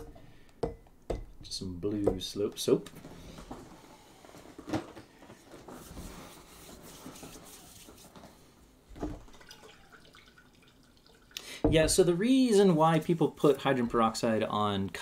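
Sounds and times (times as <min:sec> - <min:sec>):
liquid pouring: 0:09.0 - 0:11.9.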